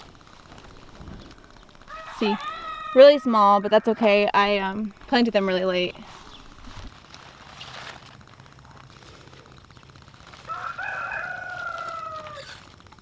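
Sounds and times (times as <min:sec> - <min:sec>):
rooster crowing: 0:01.8 - 0:04.6, 0:10.4 - 0:12.7.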